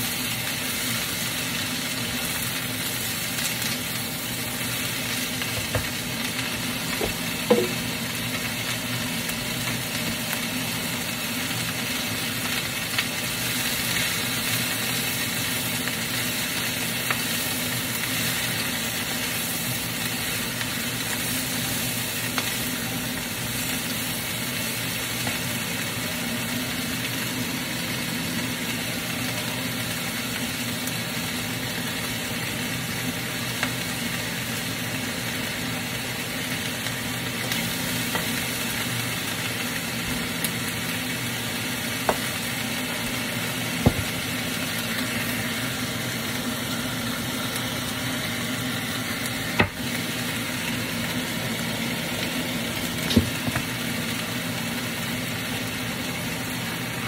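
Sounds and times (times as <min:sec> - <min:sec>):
food sizzling in a wok: 0:00.0 - 0:57.0
spatula knocking against pan: 0:43.8 - 0:44.1.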